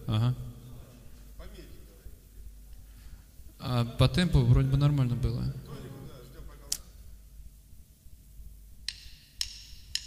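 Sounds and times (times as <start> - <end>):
drumsticks clicked together: 8.8 - 10.0.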